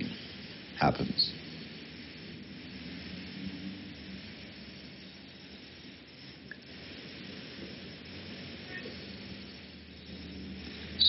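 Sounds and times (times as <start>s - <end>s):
faint low hum: 0.0s - 11.0s
recording hiss: 0.0s - 11.0s.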